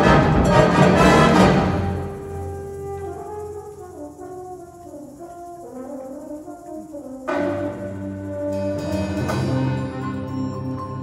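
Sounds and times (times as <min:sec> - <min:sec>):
wind ensemble playing brass chords: 0:00.0 - 0:10.8.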